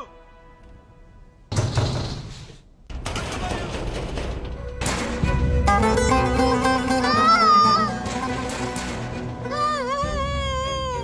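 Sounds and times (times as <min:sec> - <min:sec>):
music: 0:00.0 - 0:02.2, 0:03.0 - 0:11.0
noisy clatter: 0:01.5 - 0:05.7, 0:08.0 - 0:09.5.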